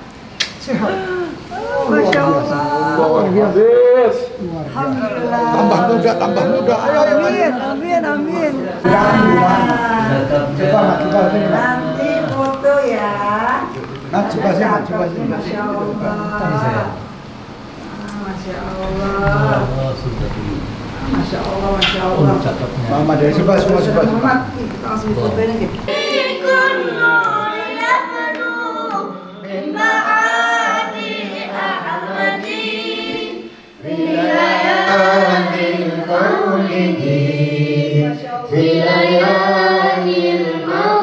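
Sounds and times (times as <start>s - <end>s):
voices singing unaccompanied: 0.8s - 41.0s.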